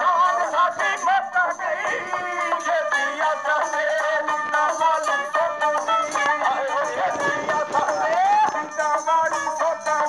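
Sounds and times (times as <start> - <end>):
person singing: 0.0 - 10.0
small hand drum: 1.9 - 10.0.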